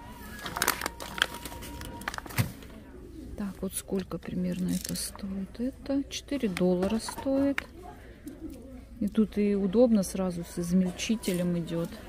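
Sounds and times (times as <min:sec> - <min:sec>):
plastic bag crinkling: 0:00.2 - 0:02.6, 0:04.3 - 0:05.2.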